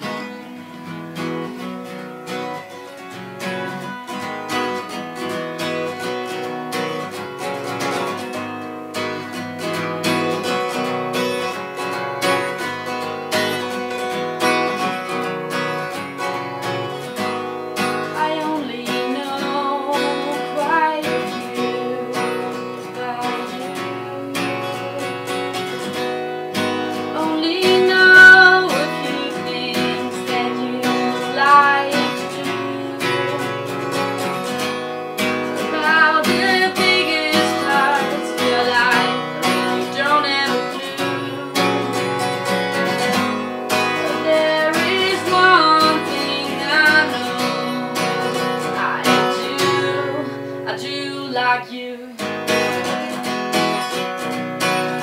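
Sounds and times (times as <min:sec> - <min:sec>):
acoustic guitar strumming: 0:00.0 - 0:55.0
woman singing: 0:16.6 - 0:34.6, 0:35.2 - 0:53.8.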